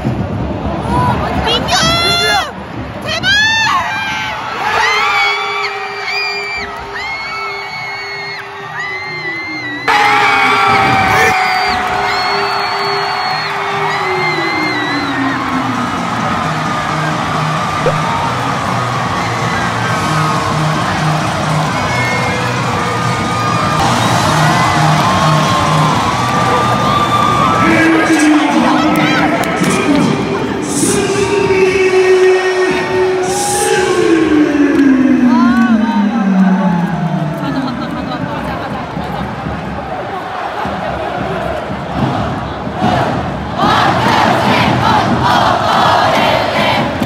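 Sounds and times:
stadium crowd screaming and cheering: 0.0s - 47.0s.

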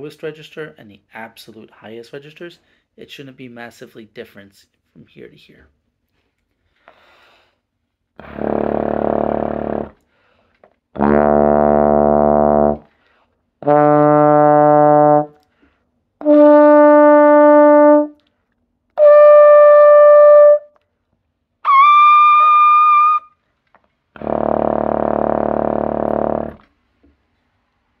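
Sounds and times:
trombone playing sustained notes: 8.2s - 10.0s, 11.0s - 12.9s, 13.6s - 15.4s, 16.2s - 18.2s, 19.0s - 20.7s, 21.7s - 23.2s, 24.2s - 26.6s.

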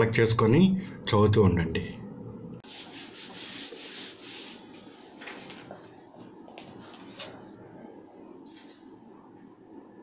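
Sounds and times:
duster rubbing whiteboard: 2.6s - 5.1s.

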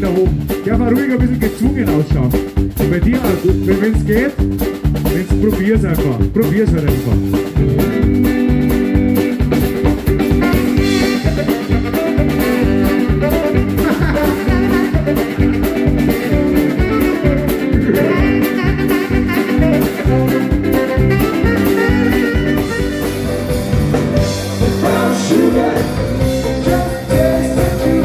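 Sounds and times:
bass: 0.0s - 28.0s
drum beat: 0.0s - 28.0s
guitar: 0.0s - 28.0s
tenor saxophone playing: 10.1s - 24.0s.

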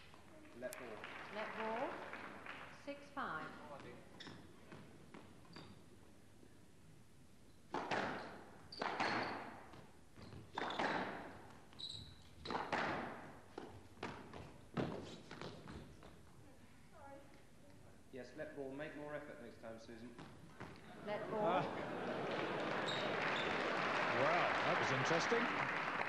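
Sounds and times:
squash ball striking racquets and walls: 7.7s - 11.6s, 12.4s - 15.6s.

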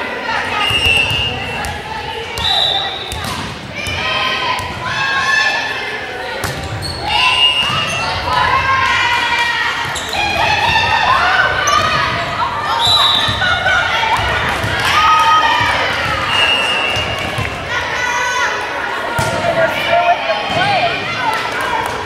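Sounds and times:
voices calling and shouting: 0.0s - 22.0s.

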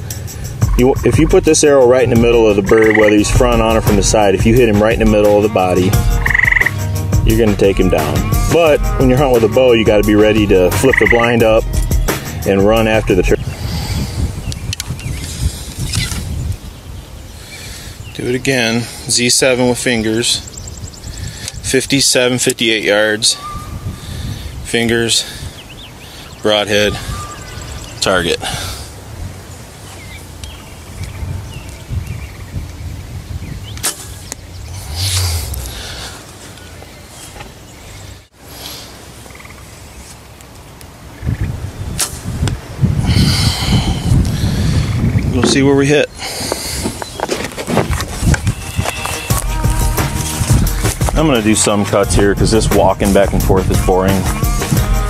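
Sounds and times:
wind rumble on microphone: 9.9s - 18.2s, 19.8s - 22.0s, 23.4s - 26.0s, 26.8s - 38.2s, 41.0s - 51.4s, 52.0s - 55.0s
faint bird chirp: 20.3s - 21.7s, 25.5s - 28.4s
low rumble: 34.4s - 37.0s.

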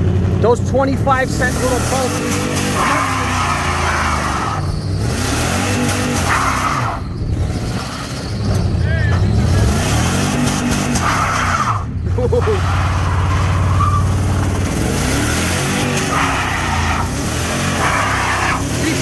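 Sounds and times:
pickup engine revving hard: 1.1s - 19.0s
tyres squealing on pavement: 1.3s - 19.0s.

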